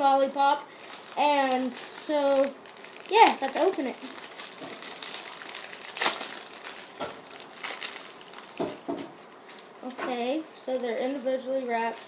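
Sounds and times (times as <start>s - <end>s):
candy packaging crinkling: 0.1s - 12.0s.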